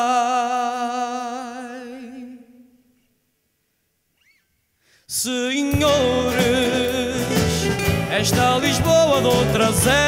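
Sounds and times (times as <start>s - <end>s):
faint short squeak: 4.2s - 4.7s.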